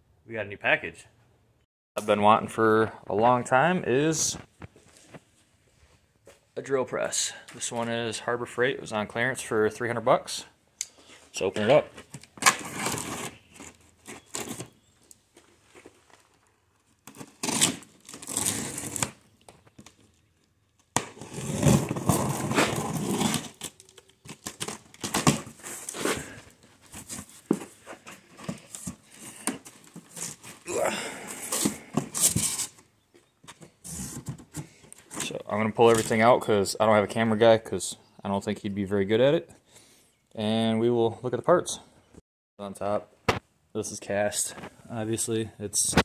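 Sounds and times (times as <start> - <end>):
knife slitting packing tape: 17.1 - 19.2.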